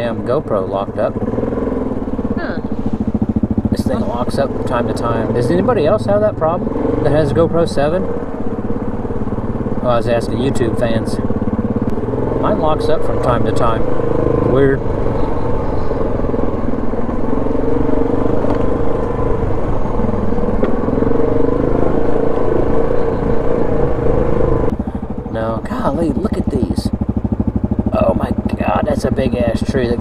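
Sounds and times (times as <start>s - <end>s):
atv engine running: 0.0s - 30.0s
engine idling: 0.0s - 30.0s.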